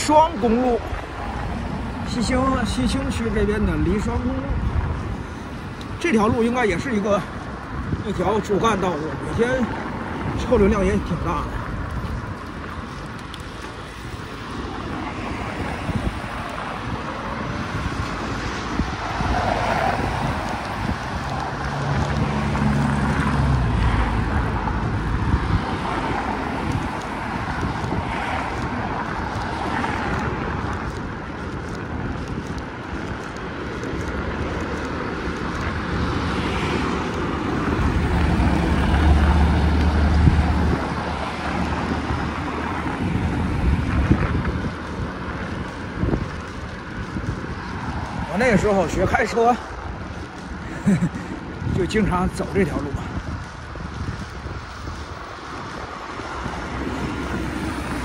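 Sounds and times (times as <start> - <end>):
traffic passing close by: 0.0 - 58.0
wind noise on microphone: 0.0 - 58.0.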